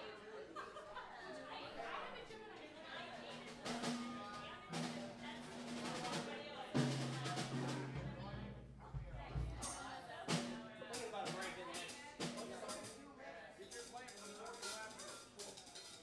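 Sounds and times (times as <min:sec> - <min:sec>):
voices chattering: 0:00.0 - 0:16.0.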